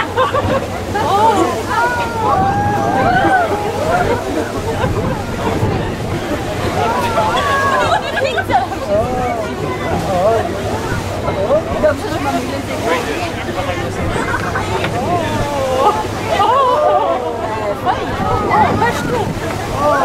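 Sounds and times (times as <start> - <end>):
passengers chattering: 0.0 - 20.0
sea water washing against hull: 0.0 - 20.0.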